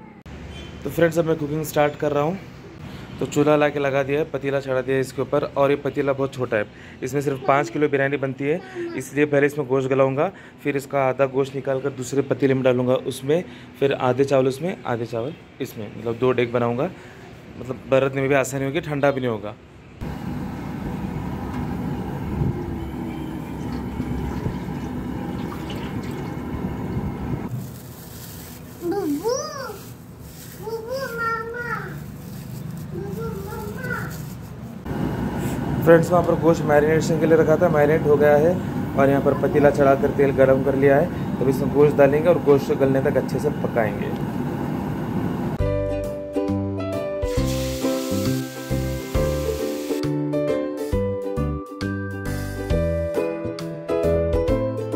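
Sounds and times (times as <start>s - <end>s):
child's voice: 7.2s - 8.0s, 8.6s - 9.3s, 28.8s - 32.1s, 32.9s - 34.4s
meat sizzling in hot oil: 47.3s - 50.0s
background music with bass line: 50.1s - 54.9s.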